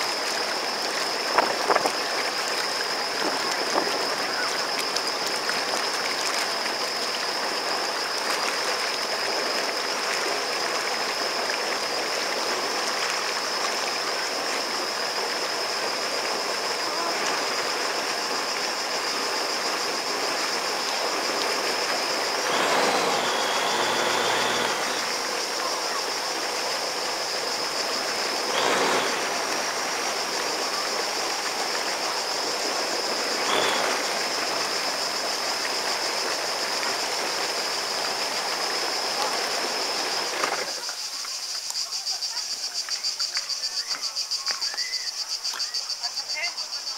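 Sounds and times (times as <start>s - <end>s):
water rushing behind watercraft: 0.0s - 46.9s
thin high tone: 22.3s - 26.0s, 33.4s - 34.8s.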